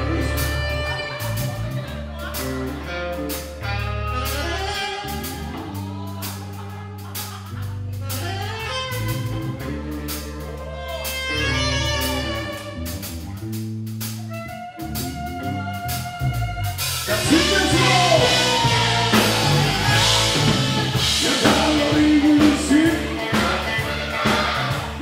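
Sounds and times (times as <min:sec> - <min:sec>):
guitar: 0:00.0 - 0:25.0
saxophone melody: 0:00.0 - 0:25.0
walking bass: 0:00.0 - 0:25.0.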